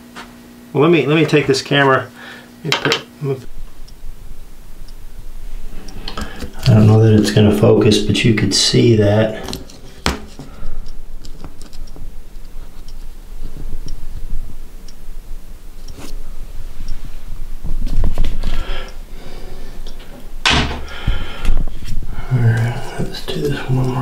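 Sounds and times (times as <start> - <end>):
low rumble: 3.5 - 8.2.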